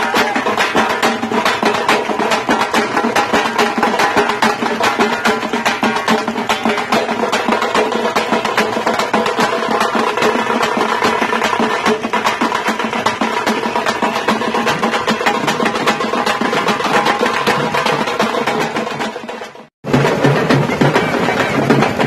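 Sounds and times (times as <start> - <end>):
frame drums beaten with sticks: 0.0 - 22.0.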